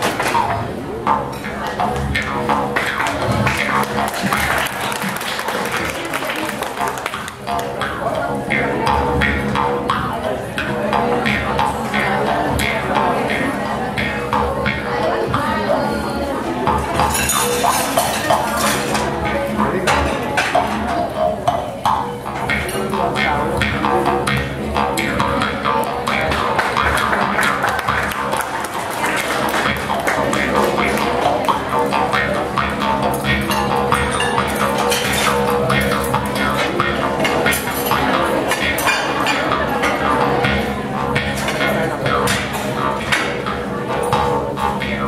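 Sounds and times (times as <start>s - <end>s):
jaw harp plucking: 0.0s - 45.0s.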